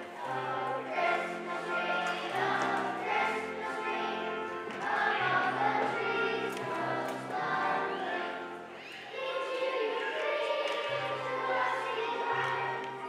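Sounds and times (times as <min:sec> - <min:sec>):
children's choir singing: 0:00.0 - 0:13.0.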